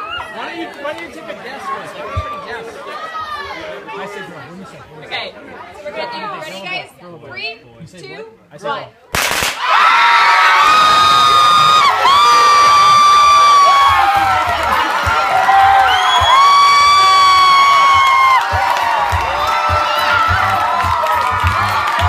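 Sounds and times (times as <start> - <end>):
crowd screaming and cheering: 0.0 - 0.6, 9.6 - 22.0
confetti cannon pop: 9.2 - 9.7
high-pitched held screams: 9.7 - 14.3, 15.4 - 18.4.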